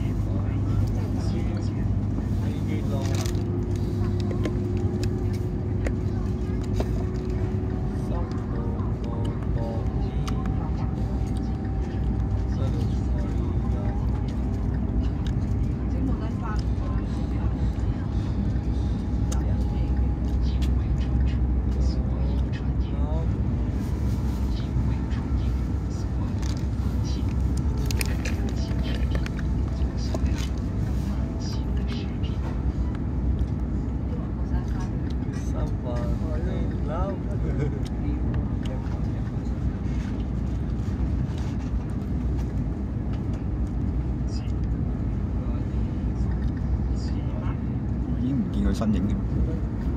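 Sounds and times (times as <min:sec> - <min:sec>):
faint voices: 0:00.0 - 0:49.9
train low rumble: 0:00.0 - 0:49.9.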